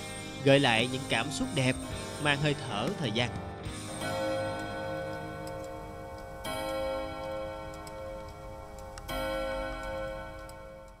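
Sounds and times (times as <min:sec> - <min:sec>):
clock chime striking: 0:00.0 - 0:11.0
wall clock ticking: 0:00.4 - 0:11.0.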